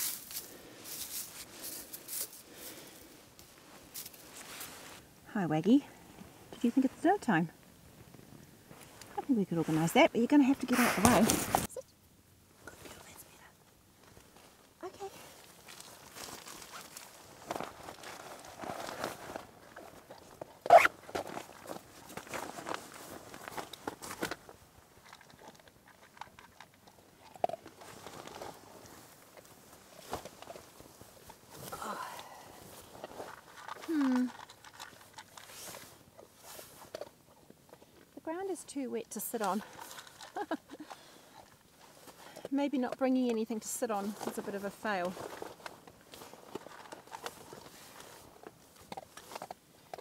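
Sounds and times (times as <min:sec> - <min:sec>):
dog chewing and crunching: 0:15.7 - 0:31.4, 0:32.8 - 0:38.2, 0:39.4 - 0:43.6, 0:45.1 - 0:50.0.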